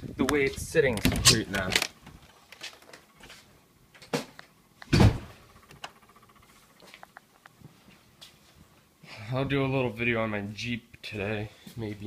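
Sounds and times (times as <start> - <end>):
footsteps: 2.5 - 3.5, 6.8 - 8.9
loud thump: 4.9 - 5.4.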